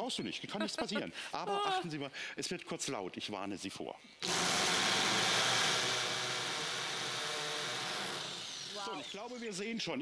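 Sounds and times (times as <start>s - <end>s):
hammer drill drilling into concrete: 4.2s - 9.8s.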